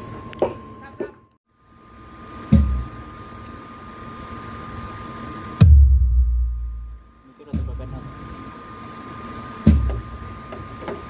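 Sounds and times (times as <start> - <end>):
sound system hiss: 1.6 - 11.0
heavy bass thumps: 2.5 - 3.0, 5.6 - 8.1, 9.7 - 10.2.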